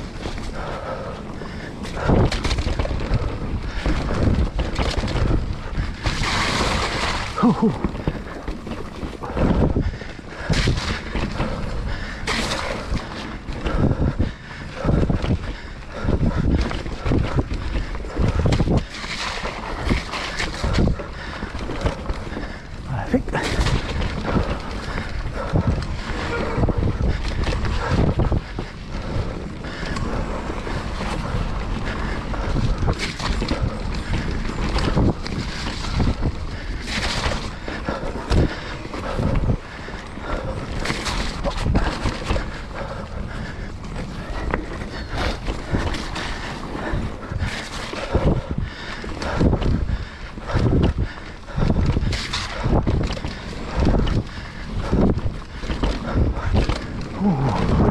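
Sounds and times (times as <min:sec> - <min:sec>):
bike tyres on dirt trail: 0:00.0 - 0:57.9
wind buffeting microphone: 0:00.0 - 0:57.9
bike knocks and rattles: 0:01.5 - 0:57.9.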